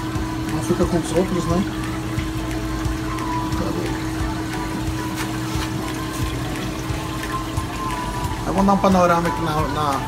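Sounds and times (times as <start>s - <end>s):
background music: 0.0s - 10.0s
water running and trickling: 0.0s - 10.0s.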